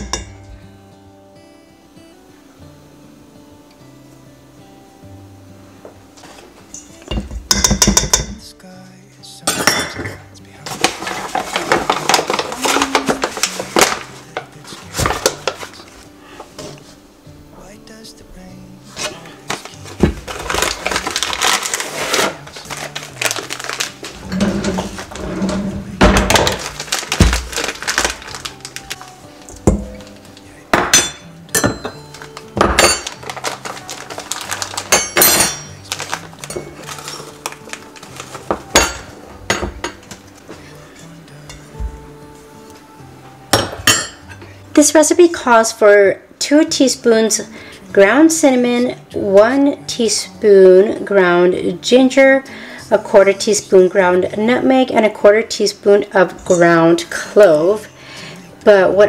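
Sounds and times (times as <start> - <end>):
background music: 0.0 - 59.0
metal cup scraping metal bowl: 24.2 - 26.0.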